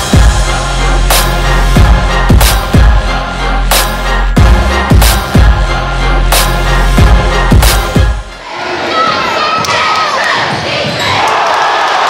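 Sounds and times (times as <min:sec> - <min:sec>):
crowd chatter: 0:08.3 - 0:12.0.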